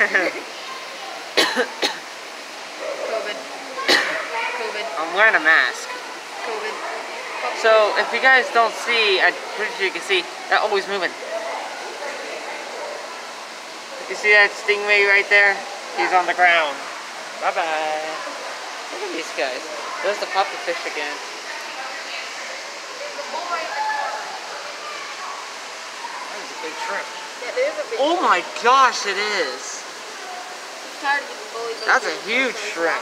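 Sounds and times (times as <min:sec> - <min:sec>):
faint murmur of voices: 0:00.0 - 0:33.0
steady background hiss: 0:00.0 - 0:33.0.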